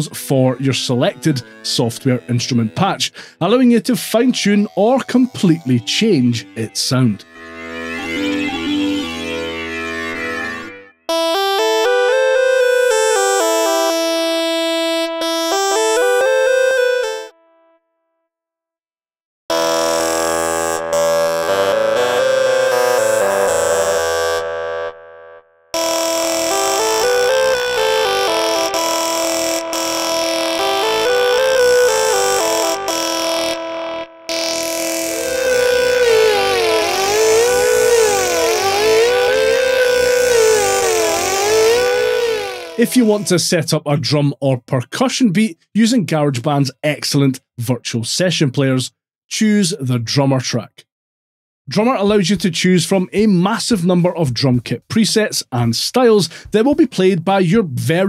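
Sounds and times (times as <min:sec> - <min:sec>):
synth lead melody: 0:00.0 - 0:17.8, 0:19.5 - 0:43.7.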